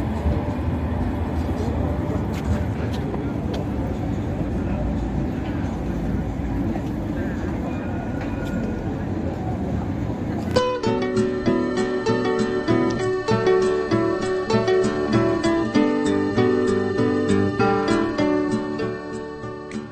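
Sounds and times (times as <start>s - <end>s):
people talking: 0.0s - 11.0s
city traffic rumble: 0.0s - 19.9s
tram moving away: 0.0s - 19.9s.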